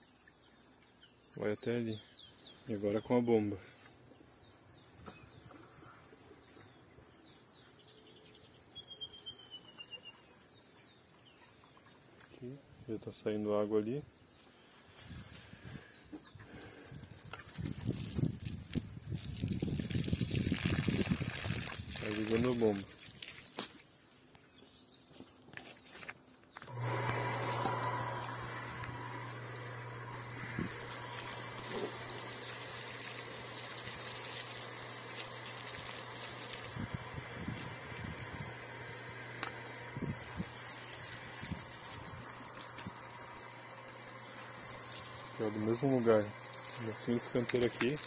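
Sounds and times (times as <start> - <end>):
electric pump humming: 16.5 - 23.2, 26.6 - 48.0
garden hose spraying water: 16.6 - 23.9, 26.7 - 48.0.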